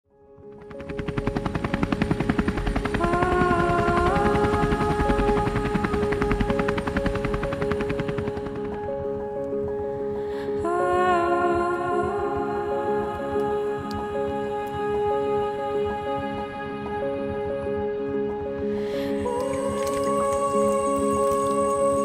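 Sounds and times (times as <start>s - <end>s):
music with slow melody: 0.1s - 22.0s
helicopter rotor blades chopping: 0.4s - 9.3s.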